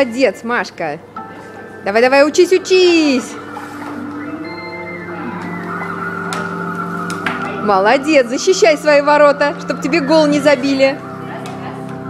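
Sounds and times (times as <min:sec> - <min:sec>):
music with held notes: 0:01.2 - 0:12.0.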